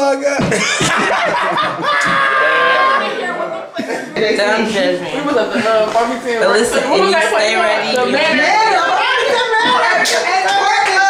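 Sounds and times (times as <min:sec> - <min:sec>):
group of people laughing: 0:00.4 - 0:06.0.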